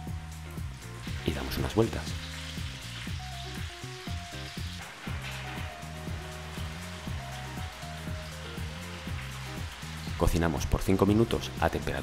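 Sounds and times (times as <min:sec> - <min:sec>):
background music: 0:00.0 - 0:12.0
mushrooms sizzling in oil: 0:00.0 - 0:12.0.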